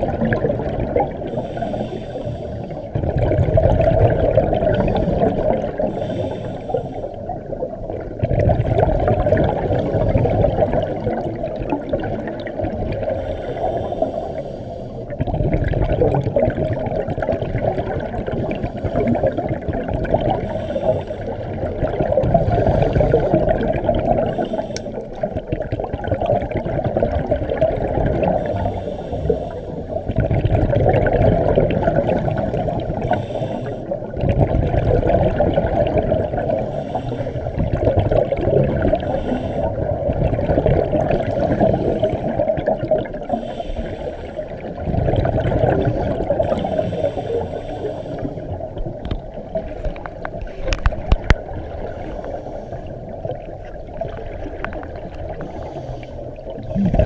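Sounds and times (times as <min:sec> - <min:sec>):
scuba regulator bubbles rushing: 0:00.0 - 0:14.1, 0:15.1 - 0:57.0.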